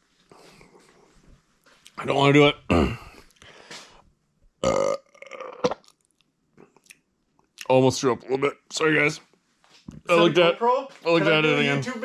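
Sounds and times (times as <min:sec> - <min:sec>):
man retching: 0:02.6 - 0:03.3, 0:04.6 - 0:06.0.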